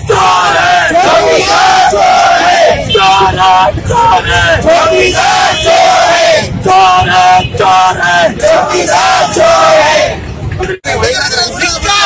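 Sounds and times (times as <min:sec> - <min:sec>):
crowd of men shouting slogans: 0:00.0 - 0:10.3.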